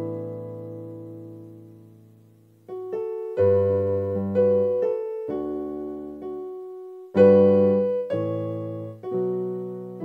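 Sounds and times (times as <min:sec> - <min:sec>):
keyboard piano chords: 0:00.0 - 0:10.0.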